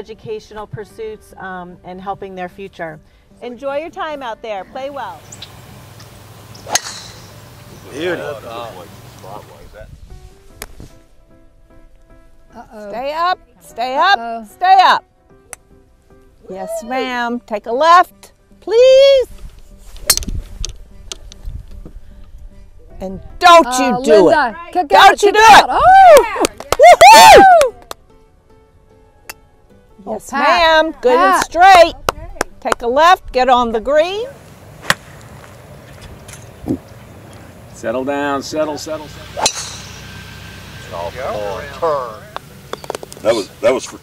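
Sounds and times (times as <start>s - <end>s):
faint background music: 0.0s - 44.0s
golf ball impact crack: 5.1s - 9.5s, 10.5s - 10.9s, 34.5s - 37.8s, 38.9s - 43.4s
golf club swing swish: 5.2s - 9.4s, 10.5s - 11.1s, 19.3s - 21.3s, 34.7s - 37.4s, 39.0s - 43.5s.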